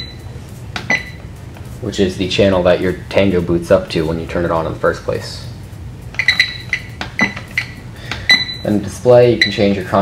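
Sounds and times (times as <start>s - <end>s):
high electronic beeps: 0.0s - 0.3s, 0.9s - 1.3s, 6.2s - 9.9s.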